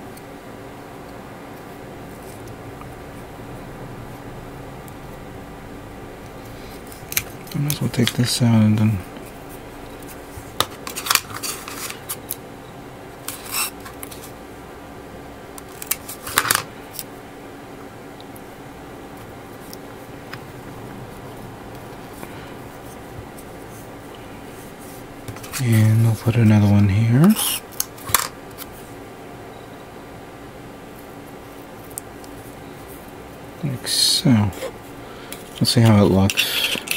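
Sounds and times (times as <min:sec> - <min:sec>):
faint room hiss: 0:00.0 - 0:36.9
masking tape clicks and crinkles: 0:15.5 - 0:17.1.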